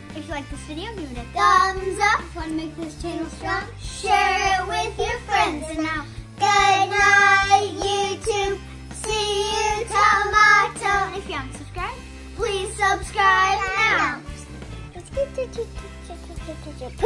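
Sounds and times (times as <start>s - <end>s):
young children singing: 3.0s - 11.3s, 12.4s - 14.2s.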